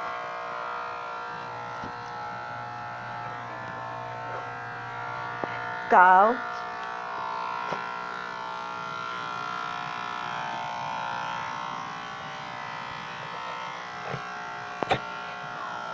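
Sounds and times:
electric pet clippers buzzing: 0:00.0 - 0:15.9.

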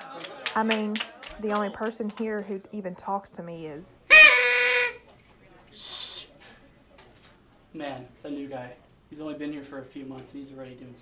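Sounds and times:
party blower squawk: 0:04.1 - 0:05.1.

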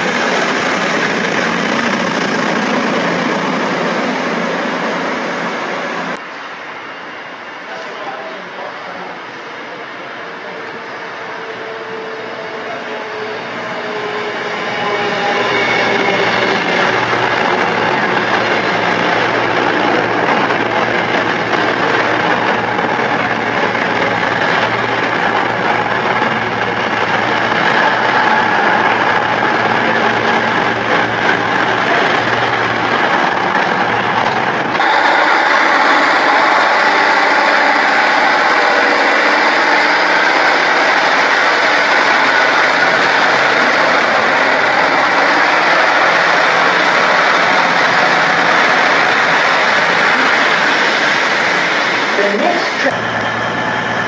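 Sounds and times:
diesel train engines running: 0:00.0 - 0:54.0
train running on rails: 0:00.0 - 0:54.0.

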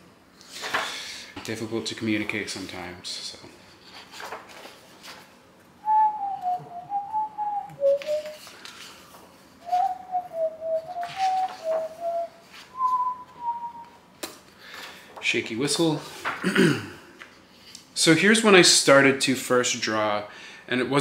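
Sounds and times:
paper pages rustling: 0:03.8 - 0:05.4, 0:07.8 - 0:10.0, 0:10.9 - 0:12.9, 0:14.7 - 0:16.4
man whistling a tune: 0:05.8 - 0:08.4, 0:09.6 - 0:14.0.

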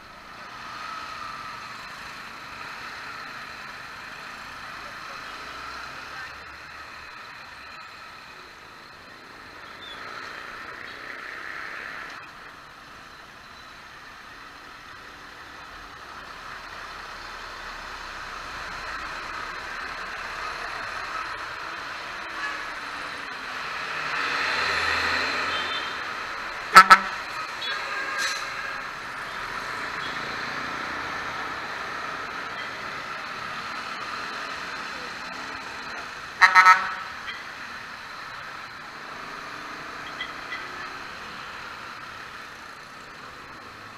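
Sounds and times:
passing traffic: 0:00.0 - 0:43.9
tyres on wet road: 0:00.0 - 0:43.9.

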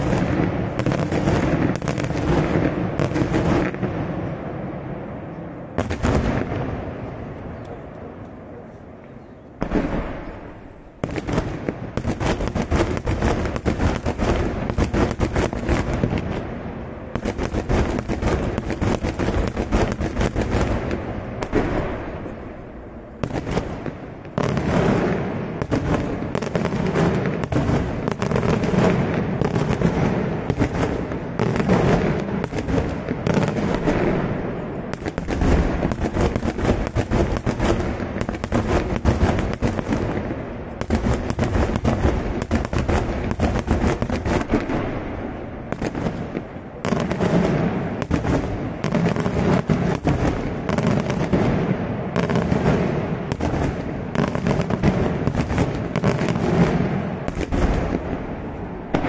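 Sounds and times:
fireworks bangs: 0:00.0 - 0:59.0.

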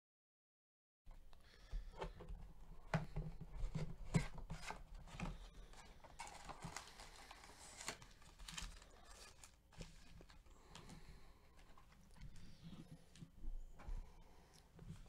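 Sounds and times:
foil card packs rustling: 0:03.9 - 0:12.5
cardboard cracking and snapping: 0:06.2 - 0:10.2.

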